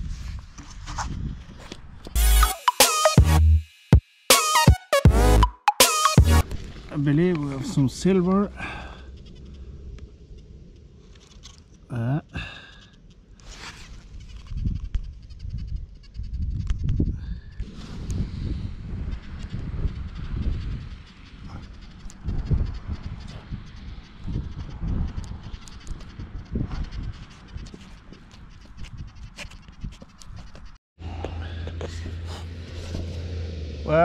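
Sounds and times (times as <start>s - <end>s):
wind buffeting microphone: 0.0s - 2.2s, 14.0s - 30.8s.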